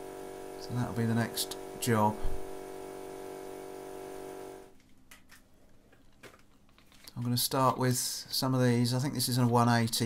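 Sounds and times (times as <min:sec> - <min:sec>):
machine hum with tones: 0:00.0 - 0:04.7.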